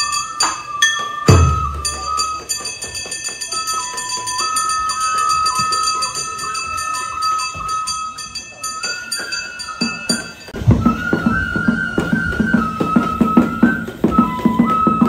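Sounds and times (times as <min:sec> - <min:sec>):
bamboo flute melody: 0:00.0 - 0:15.0
drum beats: 0:00.2 - 0:04.3, 0:09.2 - 0:15.0.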